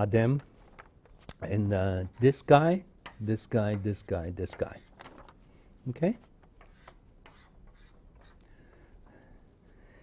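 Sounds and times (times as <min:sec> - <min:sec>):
chalk scraping on blackboard: 0:02.0 - 0:04.9, 0:06.6 - 0:08.4.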